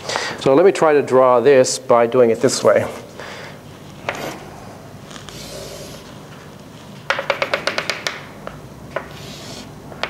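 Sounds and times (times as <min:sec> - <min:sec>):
chalk tapping on blackboard: 0:04.0 - 0:04.4, 0:07.0 - 0:08.3, 0:08.9 - 0:09.7.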